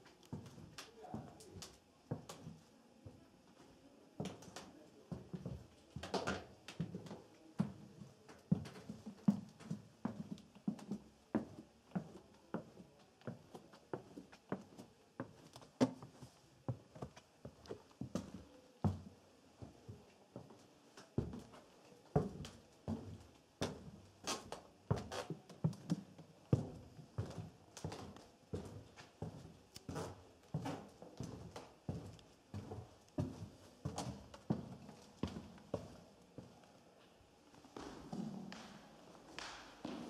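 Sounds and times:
footsteps on hard stone floor: 22.2 - 36.0.

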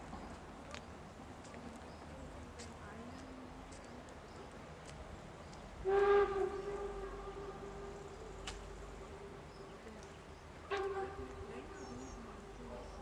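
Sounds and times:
steam locomotive whistle blast: 5.8 - 7.9.

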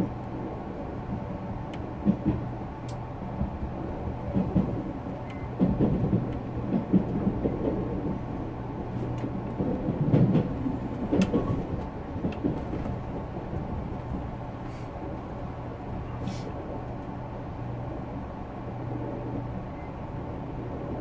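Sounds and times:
train hum and rumble: 0.0 - 21.0
wheels knocking on track: 5.6 - 8.2, 9.5 - 14.2.

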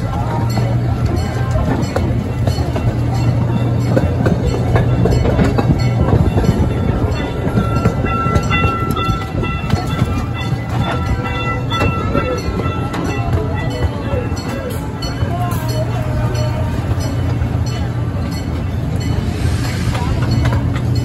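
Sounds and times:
ride train rumbling on track: 0.0 - 21.0.

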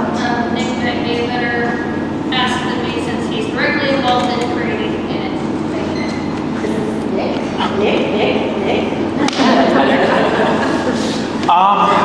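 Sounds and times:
many people talking: 0.0 - 12.0.

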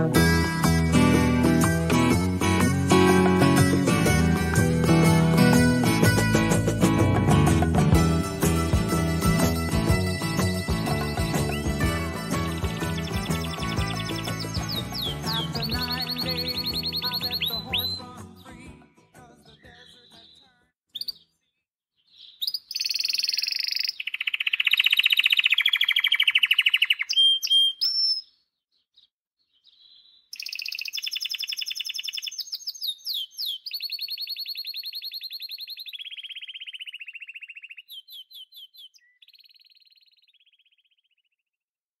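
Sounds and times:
canary singing trills: 12.6 - 18.6, 19.4 - 41.4.

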